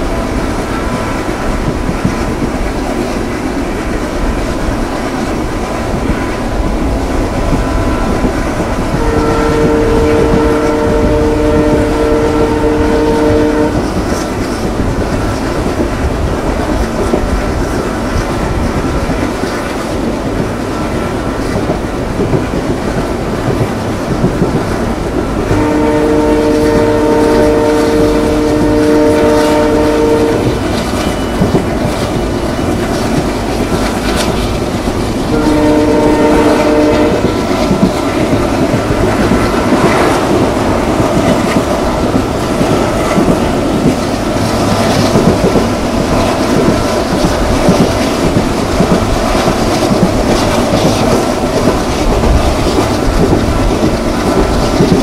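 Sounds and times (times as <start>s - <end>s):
train rumble: 0.0s - 55.0s
train wheels clicking over rail joints: 0.0s - 55.0s
locomotive horn blasts: 8.9s - 13.9s, 25.4s - 31.5s, 35.3s - 37.6s.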